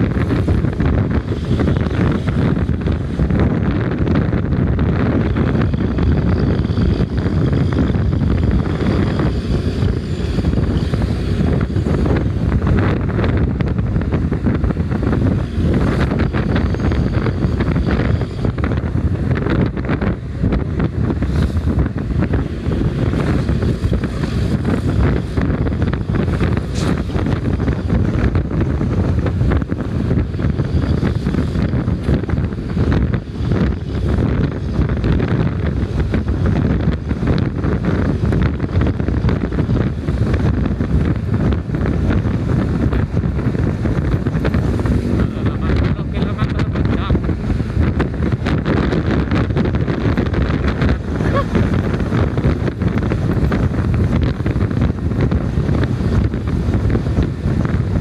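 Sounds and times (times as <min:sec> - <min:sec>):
motorcycle engine and road noise: 0:00.0 - 0:58.0
wind rushing over microphone: 0:00.0 - 0:58.0.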